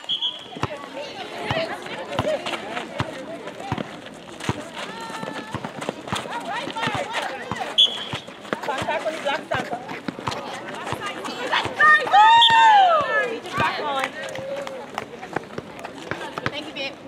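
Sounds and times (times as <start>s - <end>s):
players calling out: 0.0s - 16.6s.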